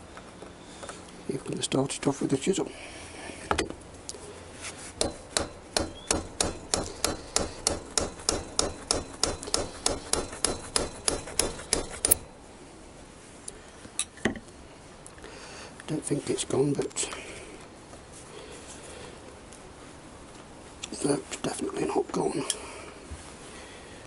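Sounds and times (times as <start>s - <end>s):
hammer tapping a chisel: 5.0s - 12.2s.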